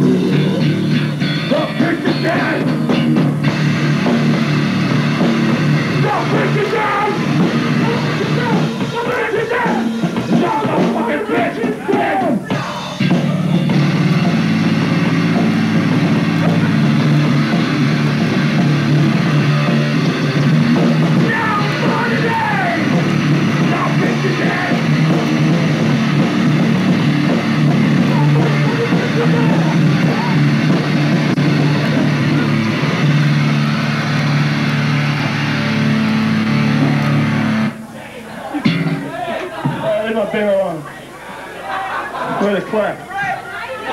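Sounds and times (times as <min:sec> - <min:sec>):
punk rock band playing: 0:00.0 - 0:40.4.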